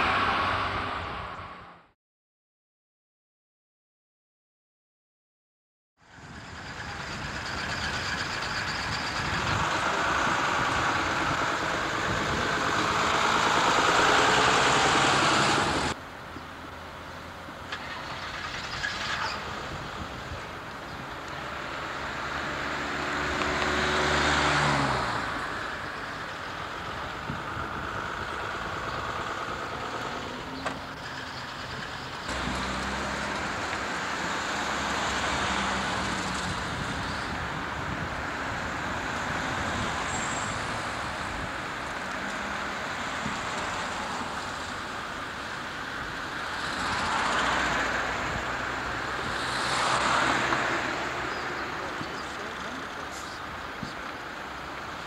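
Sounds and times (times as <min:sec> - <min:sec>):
diesel bus engines: 0:00.0 - 0:02.0, 0:06.0 - 0:55.0
road traffic: 0:00.0 - 0:02.0, 0:06.0 - 0:55.0
minibus engine revving: 0:06.2 - 0:16.0, 0:17.6 - 0:55.0.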